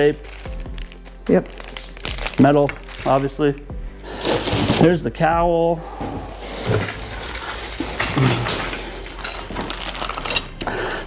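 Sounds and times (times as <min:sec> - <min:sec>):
plastic wrapping crinkling: 0:00.0 - 0:03.6, 0:04.2 - 0:05.0, 0:06.4 - 0:11.0.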